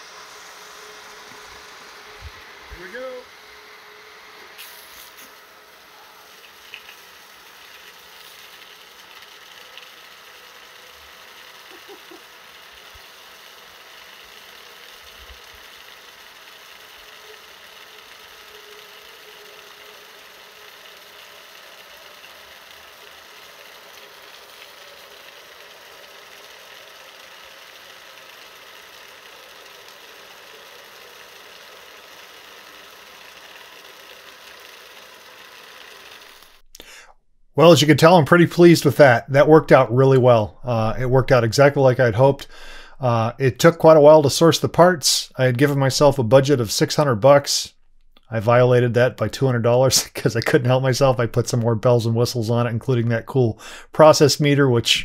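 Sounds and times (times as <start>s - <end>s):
electric motor and pump running: 0.0s - 37.0s
water jet splashing on pavement: 4.6s - 5.6s, 6.3s - 19.0s, 19.8s - 36.6s.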